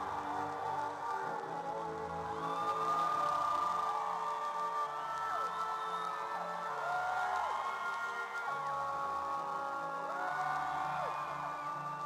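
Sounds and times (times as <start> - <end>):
concert crowd cheering: 0.0 - 12.0.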